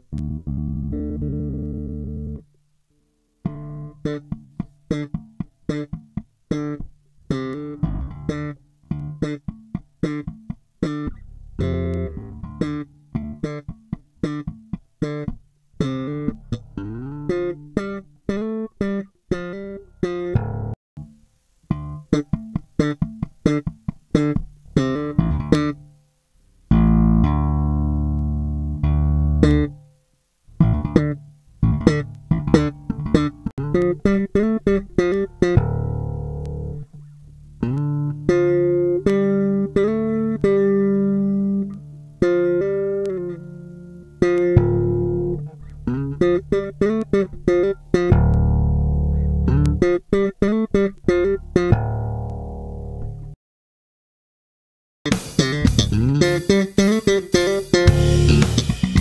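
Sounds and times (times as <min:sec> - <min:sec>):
slap electric bass: 0:00.0 - 0:02.4, 0:06.6 - 0:20.8, 0:24.2 - 0:25.8, 0:26.7 - 0:29.8, 0:30.5 - 0:37.0, 0:37.6 - 0:43.4, 0:44.2 - 0:53.4, 0:55.1 - 0:59.0.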